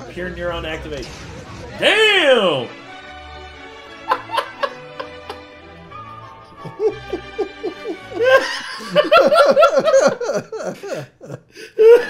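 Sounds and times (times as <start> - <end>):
man laughing hard: 4.0 - 12.0.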